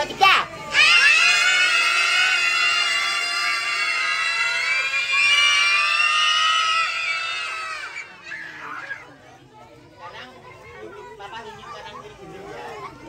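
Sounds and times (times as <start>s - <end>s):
children shrieking and cheering: 0.7s - 9.5s.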